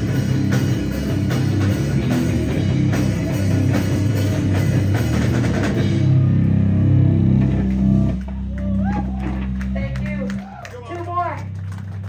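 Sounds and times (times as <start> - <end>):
rock drums: 0.0 - 12.0.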